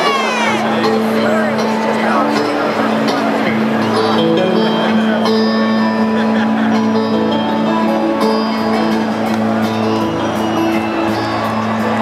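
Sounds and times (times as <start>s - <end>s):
audience shouting and cheering: 0.0s - 12.0s
rock band playing: 0.0s - 12.0s.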